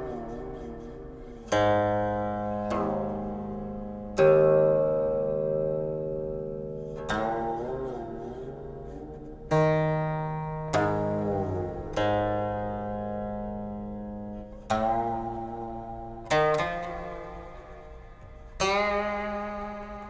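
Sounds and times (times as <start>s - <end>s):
plucked zither notes: 0.0s - 20.0s.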